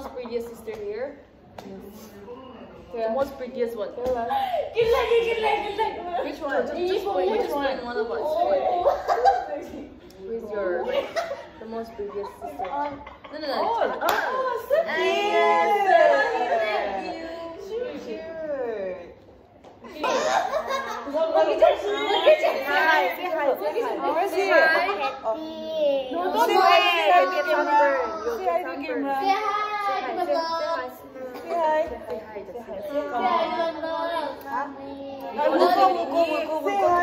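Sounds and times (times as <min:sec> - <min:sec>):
laughter: 0:08.8 - 0:09.8, 0:10.8 - 0:13.6, 0:19.9 - 0:21.2
women and child talking: 0:21.1 - 0:37.0
young boy talking: 0:25.3 - 0:28.5, 0:32.9 - 0:35.8.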